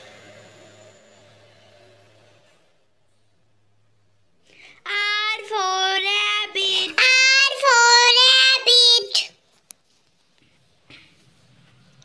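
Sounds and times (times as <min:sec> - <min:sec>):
child singing: 0:04.8 - 0:09.4.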